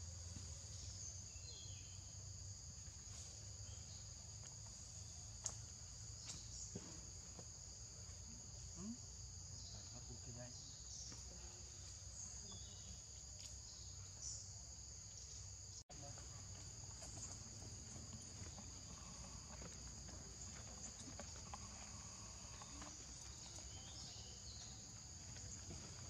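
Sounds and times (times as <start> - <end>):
insects chirring: 0.0 - 26.0.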